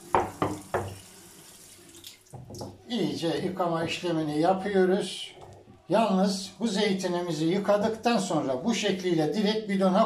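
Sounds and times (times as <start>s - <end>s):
tap water running: 0.0s - 3.2s.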